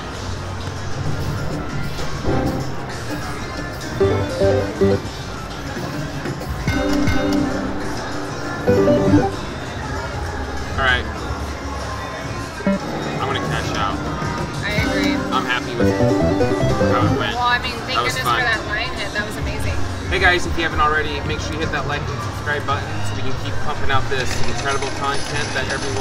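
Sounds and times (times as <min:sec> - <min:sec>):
electronic slot machine music: 0:03.8 - 0:05.6, 0:06.6 - 0:09.7, 0:12.6 - 0:14.0, 0:14.7 - 0:17.4.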